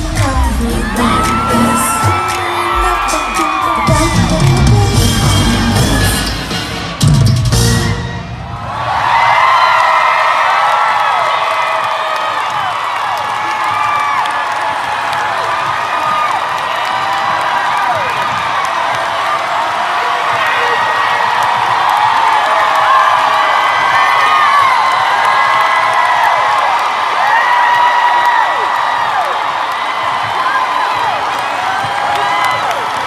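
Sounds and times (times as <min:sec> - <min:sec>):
crowd cheering and screaming: 0:00.0 - 0:33.0.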